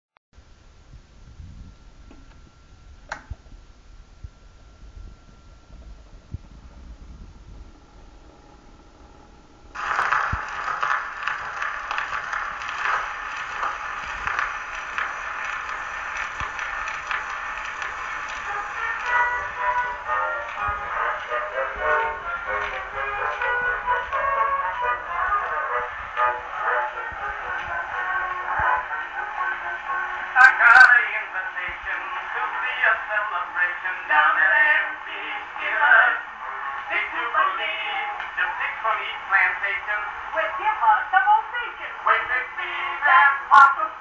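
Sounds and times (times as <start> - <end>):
record surface hiss and crackle: 0.4 - 44.0
gramophone instrumental music: 9.8 - 31.0.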